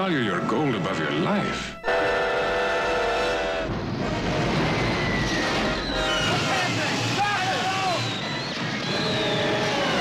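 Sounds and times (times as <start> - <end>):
steam locomotive whistle: 1.6 - 10.0.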